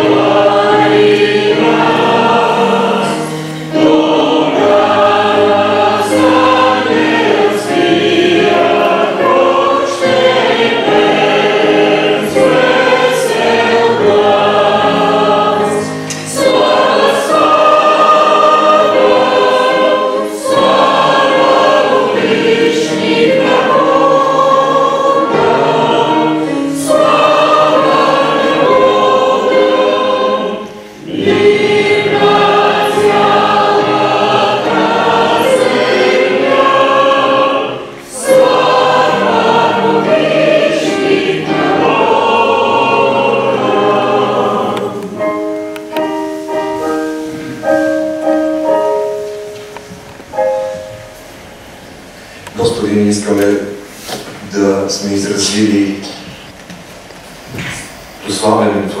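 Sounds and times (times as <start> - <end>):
congregation singing a hymn: 0.0 - 59.0
keyboard accompaniment: 0.0 - 59.0.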